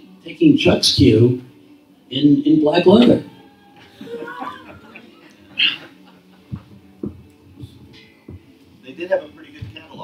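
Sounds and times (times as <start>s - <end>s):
microphone handling rub: 6.5s - 8.8s.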